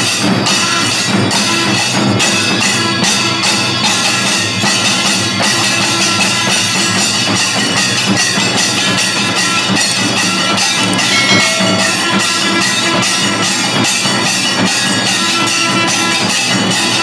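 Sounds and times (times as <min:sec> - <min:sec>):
brass hand cymbals clashing: 0:00.0 - 0:17.0.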